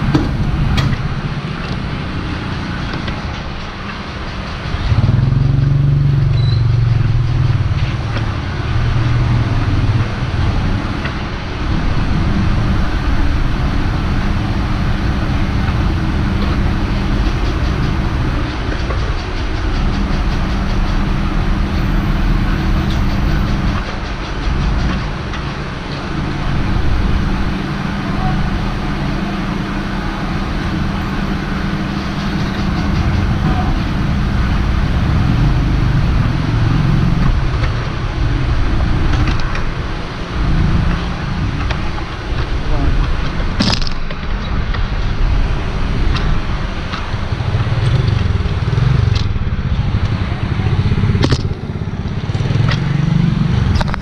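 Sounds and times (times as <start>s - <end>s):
motorbike engines idling: 0.0s - 54.0s
deep engine note: 4.8s - 39.6s.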